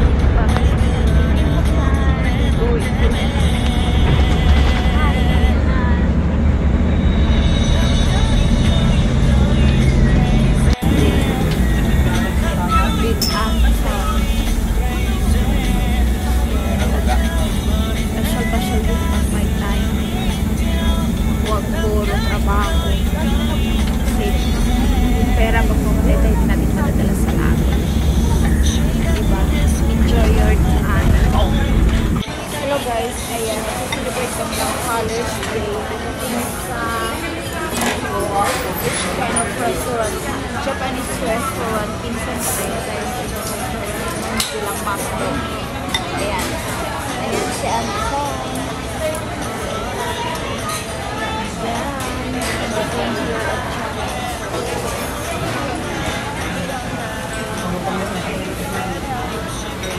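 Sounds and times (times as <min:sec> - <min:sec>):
bus rumbling: 0:00.0 - 0:32.2
indistinct diner chatter: 0:00.0 - 0:59.9
voices: 0:00.0 - 0:59.9.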